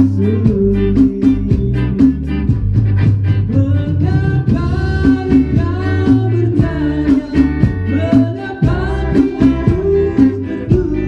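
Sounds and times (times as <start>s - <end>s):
man singing: 0.0s - 2.6s, 3.4s - 11.0s
electric bass line: 0.0s - 11.0s
percussion strikes: 0.0s - 11.0s.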